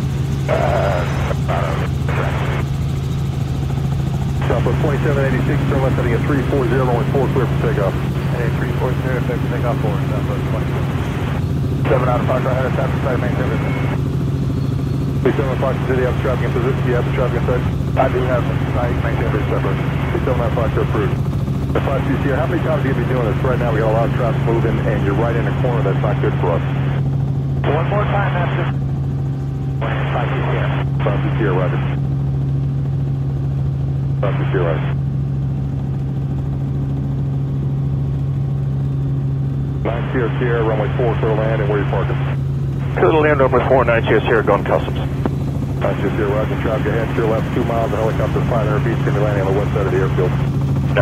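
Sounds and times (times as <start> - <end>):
helicopter drone: 0.0 - 51.0
radio speech: 0.4 - 2.8, 4.3 - 14.2, 15.2 - 28.9, 29.7 - 32.1, 34.1 - 35.0, 39.8 - 51.0.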